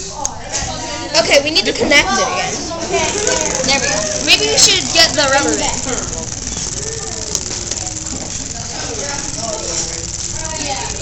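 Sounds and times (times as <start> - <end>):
faint voices: 0.0 - 11.0
small electric motor buzzing: 2.8 - 11.0.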